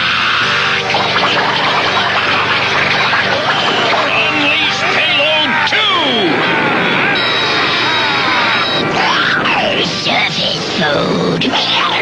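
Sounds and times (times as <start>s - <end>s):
steady high tone: 0.8s - 11.0s.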